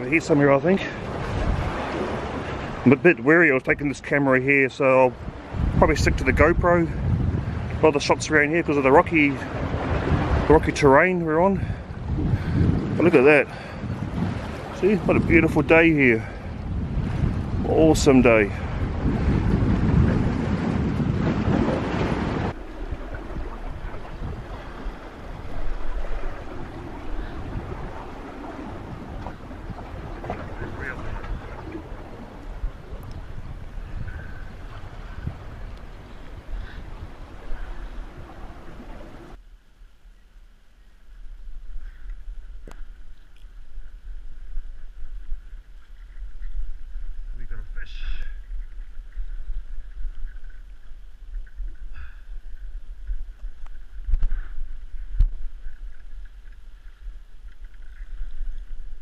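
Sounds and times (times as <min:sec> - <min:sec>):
sea washing against rocks: 0:00.0 - 0:39.4
wind buffeting microphone: 0:00.0 - 0:59.0.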